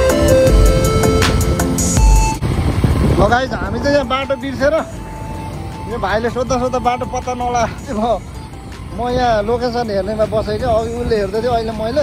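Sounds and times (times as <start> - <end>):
loud music: 0.0 - 3.0
motorcycle riding noise: 0.0 - 12.0
road traffic: 0.0 - 12.0.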